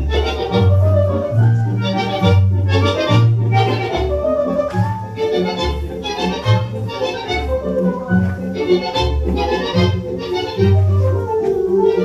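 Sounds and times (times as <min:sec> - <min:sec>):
bandoneon melody: 0:00.0 - 0:12.0
bass line: 0:00.0 - 0:12.0.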